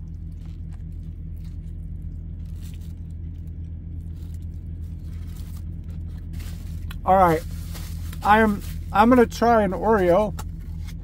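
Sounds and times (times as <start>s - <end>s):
paper wrapper crinkling: 0.0s - 9.4s
steady low hum: 0.0s - 11.0s.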